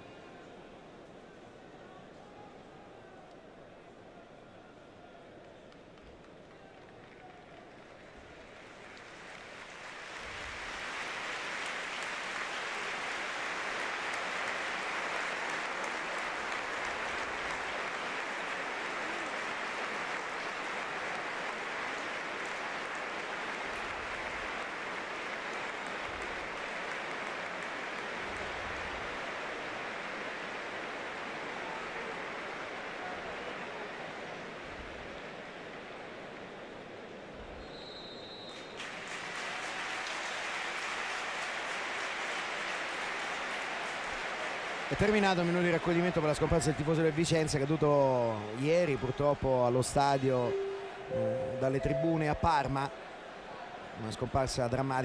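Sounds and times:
stadium crowd applauding: 4.8 - 36.6, 38.3 - 55.0.

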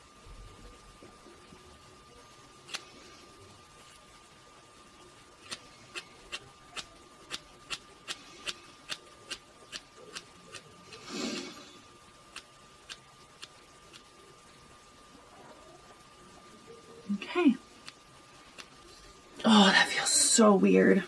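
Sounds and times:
scissors snipping hair: 2.6 - 2.9, 5.4 - 10.7.

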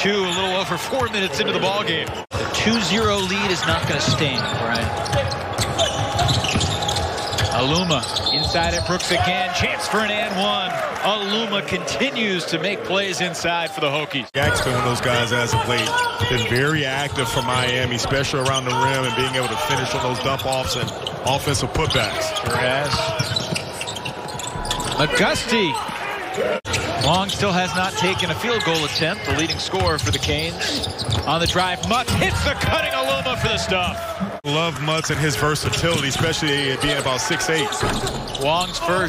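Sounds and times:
arena game noise: 0.0 - 39.0.

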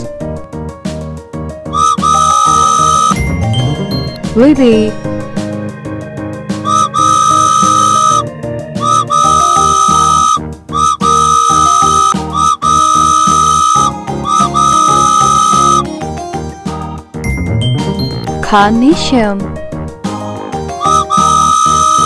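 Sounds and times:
high whistle blasts: 1.8 - 3.2, 6.6 - 8.2, 8.8 - 15.8, 20.8 - 22.0
cheerful children's music: 1.8 - 6.0, 8.8 - 19.4, 20.0 - 22.0.

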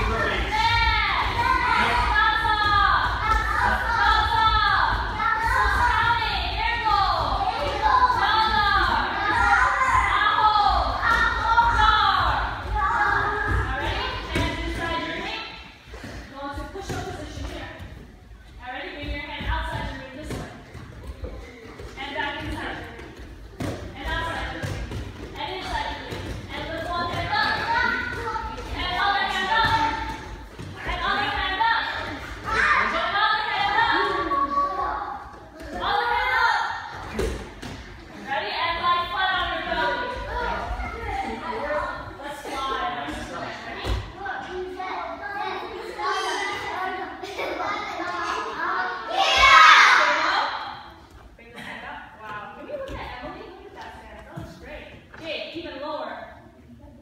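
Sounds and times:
children shouting: 47.7 - 50.4.

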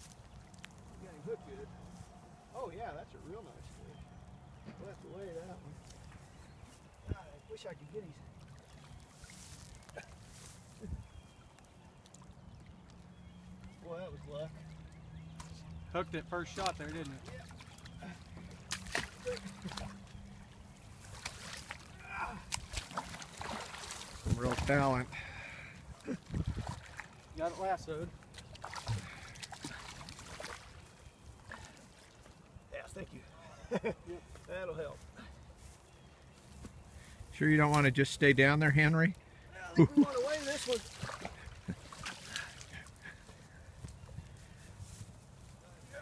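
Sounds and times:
river water flowing: 11.4 - 26.0, 26.7 - 32.6, 39.3 - 43.7.

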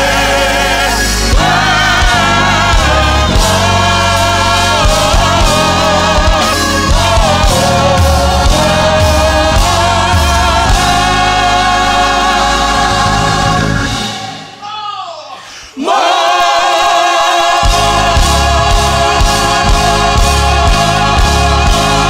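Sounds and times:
gospel choir singing with band: 0.0 - 14.8, 15.4 - 22.0.

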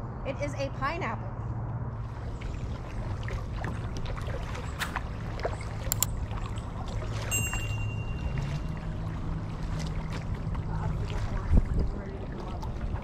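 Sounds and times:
steady low rumble: 0.0 - 13.0
paddle blades dipping: 2.0 - 13.0
water trickling and dripping: 2.0 - 13.0.

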